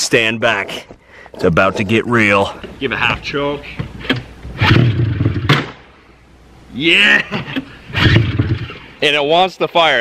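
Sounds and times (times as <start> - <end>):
engine backfire crack: 4.1 - 5.8, 7.9 - 8.9
recoil pull-start: 7.9 - 8.9
two-stroke engine firing briefly: 8.0 - 8.9.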